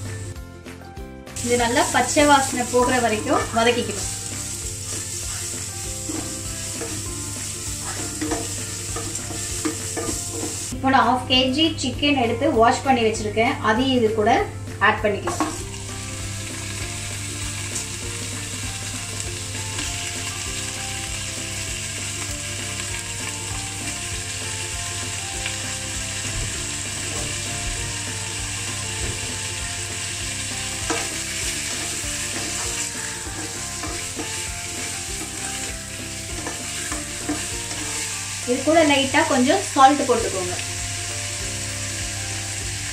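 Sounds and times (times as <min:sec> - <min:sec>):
chicken sizzling in hot oil: 0:01.4 - 0:10.8, 0:15.2 - 0:42.9.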